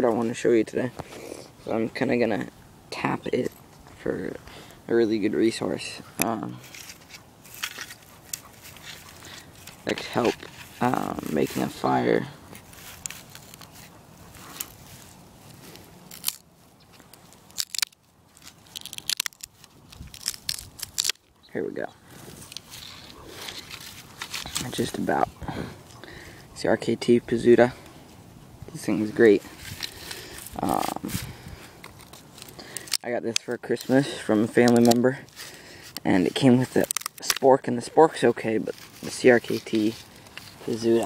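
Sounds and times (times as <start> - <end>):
knife scraping a dry stick: 6.0 - 21.5, 22.1 - 26.8, 28.9 - 41.0
wood crackling and snapping: 6.2 - 11.9, 12.5 - 21.4, 22.1 - 25.0, 29.5 - 41.0.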